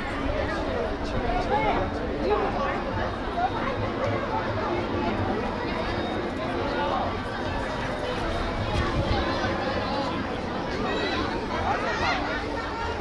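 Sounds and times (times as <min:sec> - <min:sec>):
babble of overlapping voices: 0:00.0 - 0:13.0.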